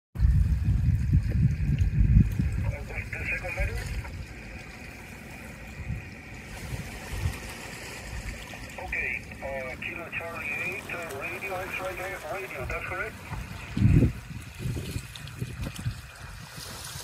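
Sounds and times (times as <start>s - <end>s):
wind rumbling on microphone: 0.2s - 17.0s.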